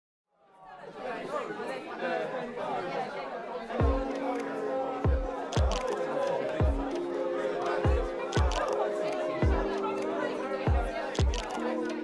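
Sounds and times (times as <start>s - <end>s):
crowd chattering: 0.4s - 12.0s
music with held chord: 3.8s - 12.0s.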